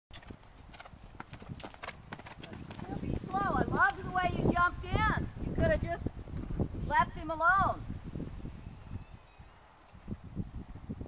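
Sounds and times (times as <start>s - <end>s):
horse hoofbeats on sand: 0.1s - 4.7s.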